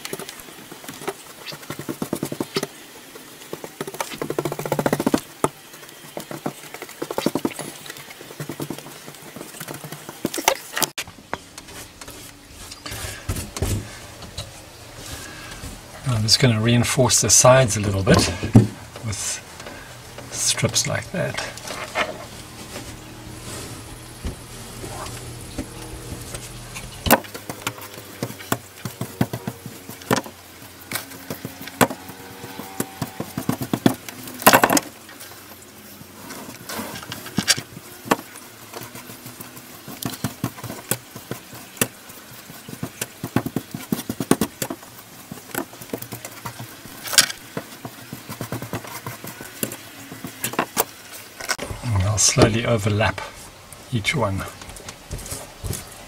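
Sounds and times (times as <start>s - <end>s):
steady low hum: 11.0s - 33.3s.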